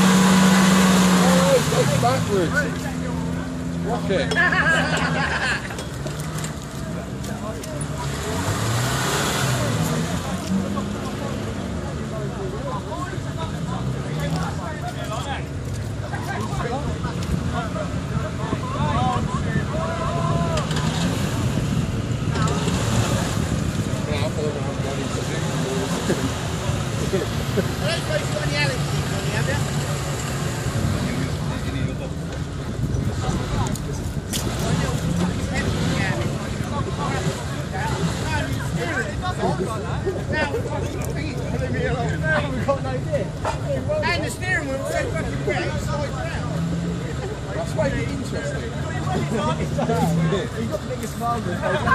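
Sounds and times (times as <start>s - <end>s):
car engine revving: 0.0s - 51.9s
people talking: 0.0s - 51.9s
voices of onlookers: 0.0s - 51.9s
vehicle wading through water: 15.9s - 32.0s.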